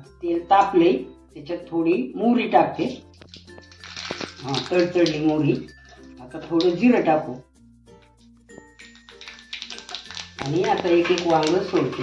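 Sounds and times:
background music: 0.0 - 12.0
seeds sizzling in hot oil: 3.2 - 5.0, 8.6 - 12.0.

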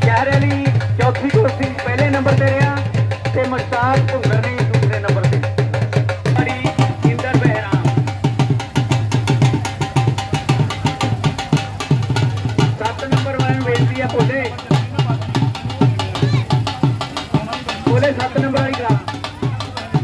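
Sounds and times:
drum fast even beat: 0.0 - 20.0
voices: 6.2 - 20.0.

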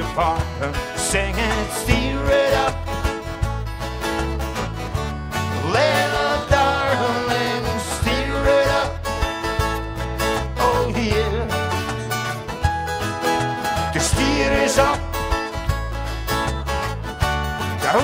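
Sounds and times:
person singing: 0.0 - 2.9, 5.6 - 9.1, 10.6 - 12.0, 13.8 - 15.3
acoustic guitars strumming: 0.0 - 18.0
low bass notes: 0.0 - 18.0.

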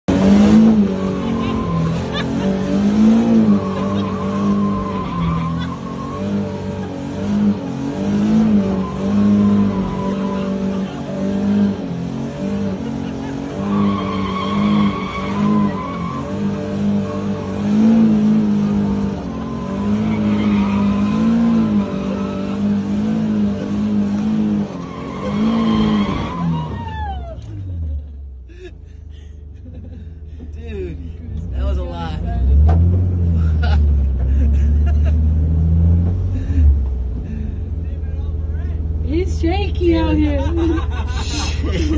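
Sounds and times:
car engine revving: 0.0 - 28.0, 30.3 - 41.9
tyres squealing: 1.0 - 6.9, 8.5 - 11.6, 13.3 - 17.6, 18.6 - 23.2, 24.4 - 27.5
car engine idling: 8.6 - 41.9.

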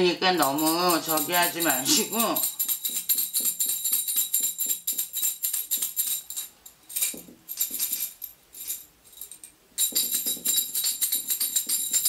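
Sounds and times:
small metal bells jingling: 0.2 - 12.0.

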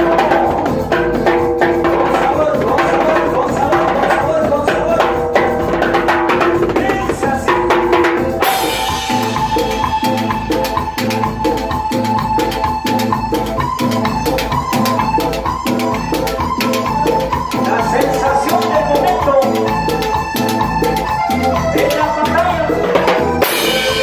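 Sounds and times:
keyboard playing: 0.0 - 24.0
cymbal crash: 8.4 - 10.4, 23.4 - 24.0.

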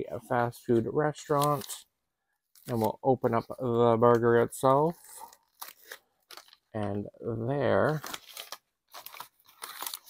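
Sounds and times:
paper wrapper crinkling: 5.1 - 6.8, 7.7 - 10.0.

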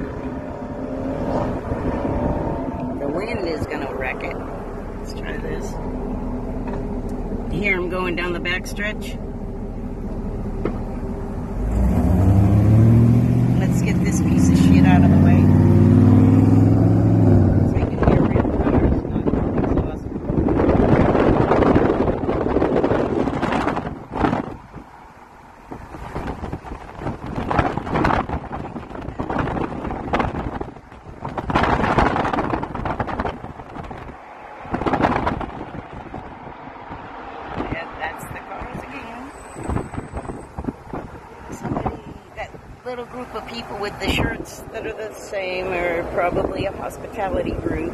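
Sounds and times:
road and traffic noise: 0.0 - 47.9
vehicle engine accelerating: 0.0 - 47.9
wind buffeting microphone: 0.0 - 47.9.

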